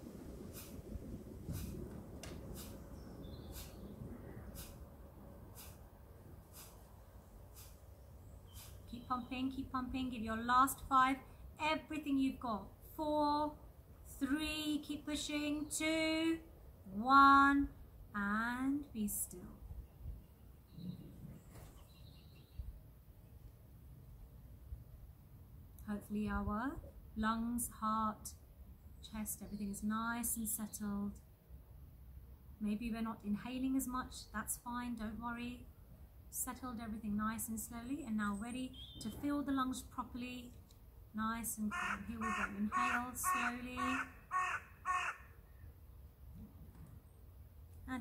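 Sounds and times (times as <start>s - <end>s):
low steady rumble: 0.0s - 7.5s
low background rumble: 0.0s - 20.3s
high bird chirps: 2.9s - 4.0s, 38.6s - 39.2s
person speaking: 41.2s - 44.1s.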